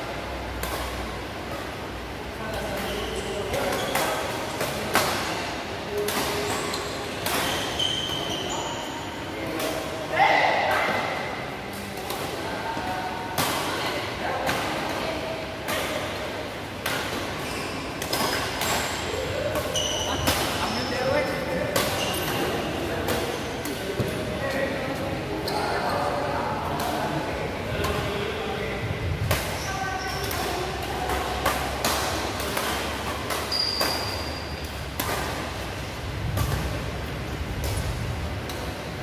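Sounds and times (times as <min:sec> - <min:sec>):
players' voices: 0:00.0 - 0:39.0
shoes squeaking on court: 0:02.6 - 0:04.3, 0:06.3 - 0:09.2, 0:17.2 - 0:24.1, 0:25.3 - 0:26.2, 0:32.6 - 0:35.6
rackets hitting shuttlecock: 0:16.8 - 0:24.2, 0:29.1 - 0:38.8.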